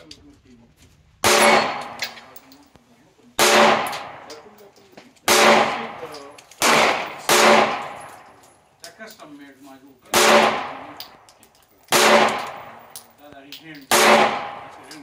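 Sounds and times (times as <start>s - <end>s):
pistol shots: 1.2s - 2.4s, 3.4s - 4.6s, 5.2s - 8.4s, 10.1s - 13.2s, 13.9s - 15.0s.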